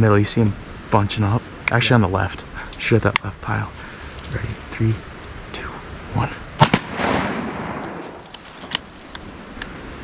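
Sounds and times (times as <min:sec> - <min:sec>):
shotgun blasts: 0:06.6 - 0:08.2.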